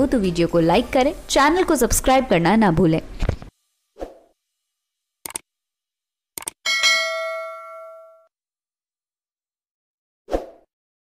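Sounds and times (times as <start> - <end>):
bright bell ding: 6.7 - 8.3.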